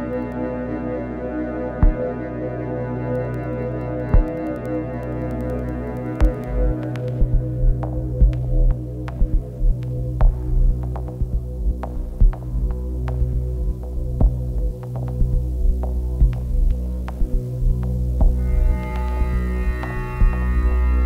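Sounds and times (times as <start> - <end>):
low electronic drone: 0.0 - 21.0
irregular clicks: 4.1 - 7.4
low thumps: 6.2 - 20.7.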